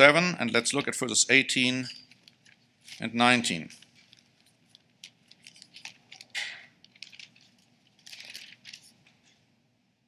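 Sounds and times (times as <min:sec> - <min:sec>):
thin pages rustling: 0:02.1 - 0:09.3.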